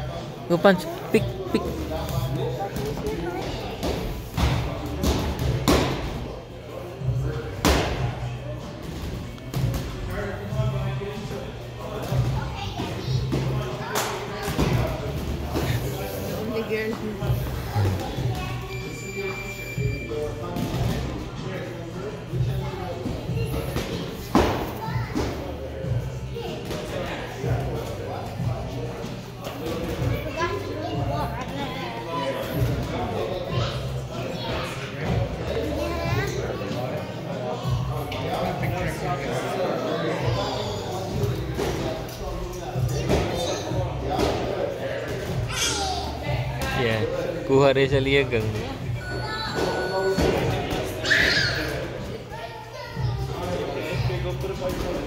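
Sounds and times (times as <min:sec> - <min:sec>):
children's voices: 0:45.5 - 0:46.2.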